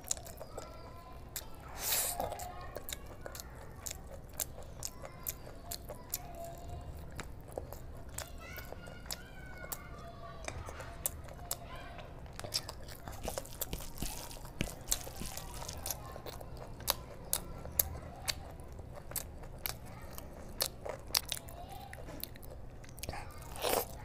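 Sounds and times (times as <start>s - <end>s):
mouth chewing food: 0.0s - 24.0s.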